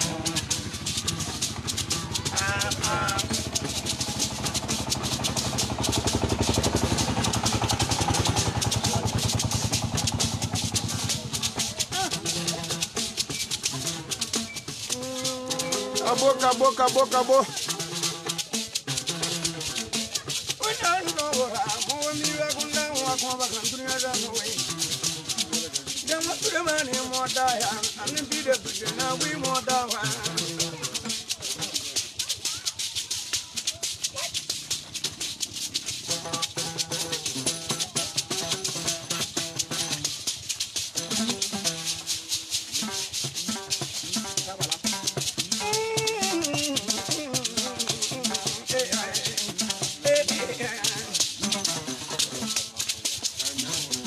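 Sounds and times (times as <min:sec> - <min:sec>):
hand-held rattles shaken: 0:00.0 - 0:54.0.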